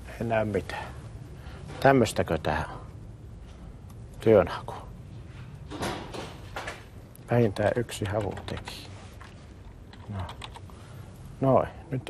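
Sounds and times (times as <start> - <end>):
keyboard typing: 7.6 - 10.7.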